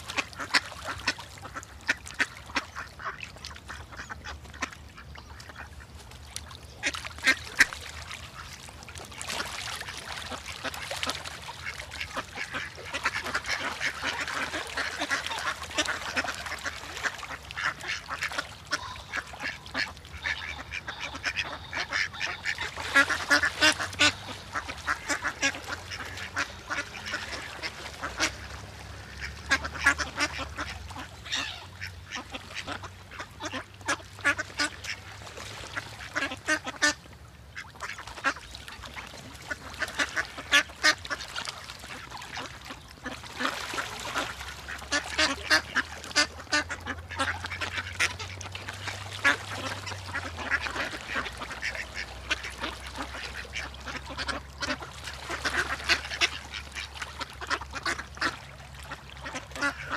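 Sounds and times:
ducks quacking: 0.0 - 6.0, 6.7 - 59.9.

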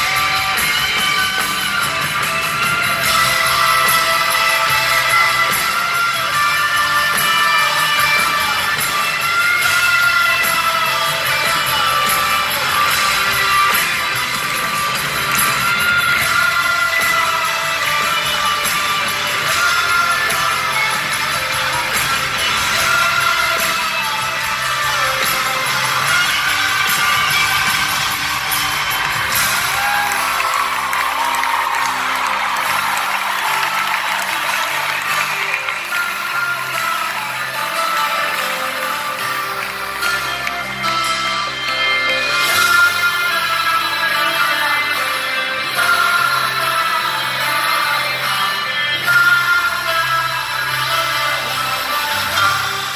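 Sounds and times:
crowd cheering: 0.0 - 52.9
live pop-rock band: 0.0 - 52.9
voices singing: 0.0 - 52.9.

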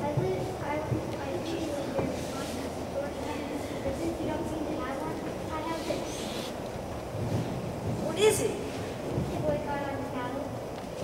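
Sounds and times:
low rumble of room noise: 0.0 - 11.0.

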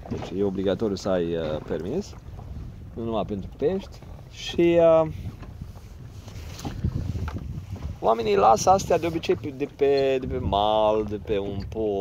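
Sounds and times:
water lapping against boat hull: 0.0 - 12.0
wind buffeting microphone: 0.0 - 12.0.

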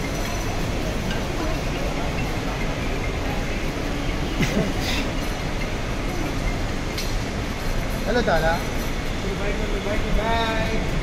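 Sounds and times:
trolley wheels rumbling: 0.0 - 11.0.

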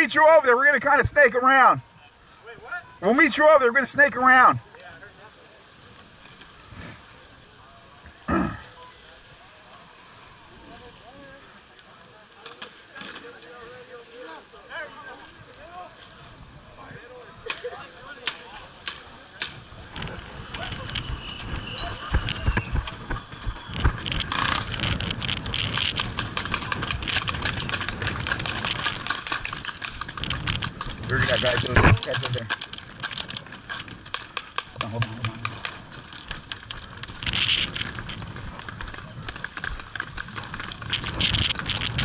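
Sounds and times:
faint voices: 0.0 - 42.0
rapid clicks and knocks: 18.2 - 42.0
gusty wind on microphone: 19.5 - 42.0.

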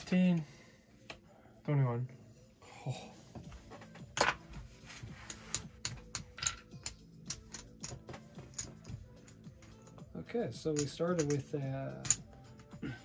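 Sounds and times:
soft background music: 0.0 - 13.0
casino chips and cards clicking: 5.2 - 10.0, 10.7 - 12.8.

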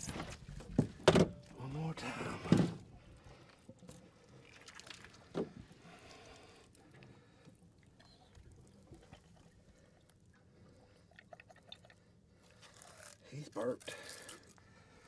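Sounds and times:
wet handling of fish in net: 12.3 - 15.0.

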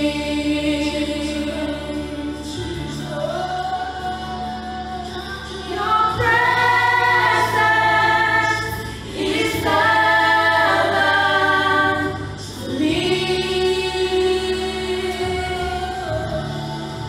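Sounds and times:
group singing in harmony: 0.0 - 17.0
steady low accompaniment: 0.0 - 17.0.

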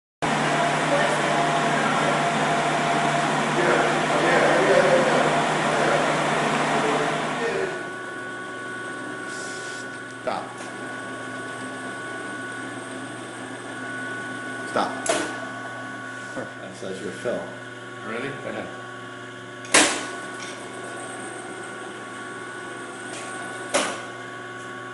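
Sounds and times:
blender running: 0.2 - 24.9
packaging machinery humming: 0.2 - 24.9.

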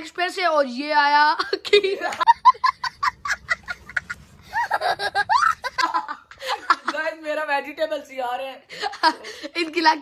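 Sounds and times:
young child laughing: 1.4 - 7.0.

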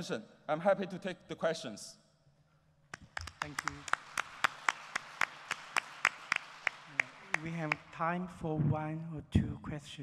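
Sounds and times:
sharp even claps: 2.9 - 8.0
audience applauding: 3.0 - 8.0.

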